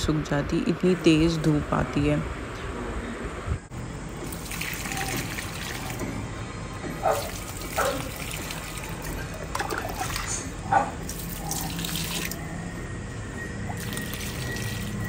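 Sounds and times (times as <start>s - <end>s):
water splashing on plants: 4.2s - 6.0s, 7.1s - 12.4s, 13.7s - 15.0s.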